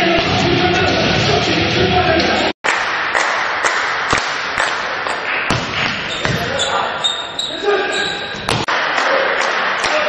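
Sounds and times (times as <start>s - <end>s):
crowd noise in a large hall: 0.0s - 10.0s.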